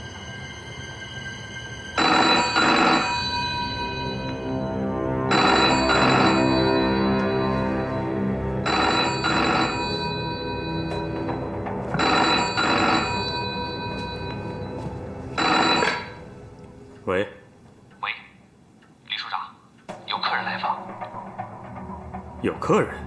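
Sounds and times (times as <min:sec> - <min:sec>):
telephone bell ringing: 0:02.0 - 0:16.3.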